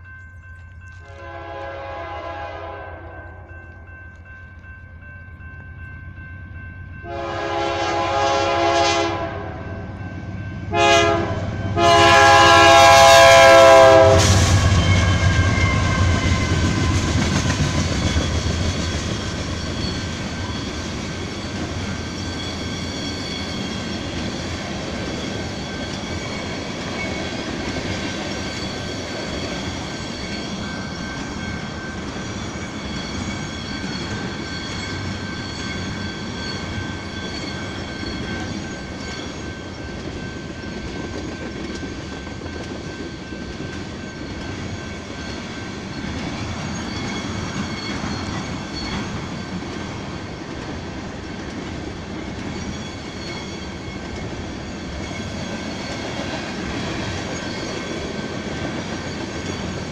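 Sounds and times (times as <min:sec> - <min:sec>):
diesel locomotive passing: 0:00.0 - 0:59.9
train wheels on rails: 0:00.0 - 0:59.9
locomotive air horn: 0:01.0 - 0:03.4, 0:07.0 - 0:09.6, 0:10.7 - 0:16.6.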